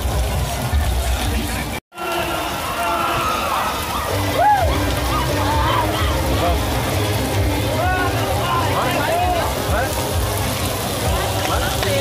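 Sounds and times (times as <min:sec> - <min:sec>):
heavy rain: 0:00.0 - 0:12.0
people shouting and whooping: 0:02.0 - 0:06.6, 0:07.5 - 0:09.6.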